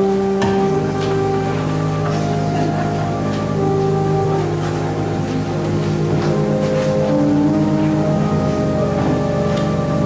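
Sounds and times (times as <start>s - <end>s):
low wavering note: 0.0s - 10.0s
slow keyboard chords: 0.0s - 10.0s.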